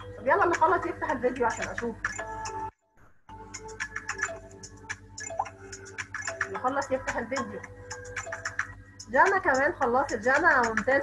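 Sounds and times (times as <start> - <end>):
chiming electronic game music: 1.5 - 2.7, 3.3 - 10.6.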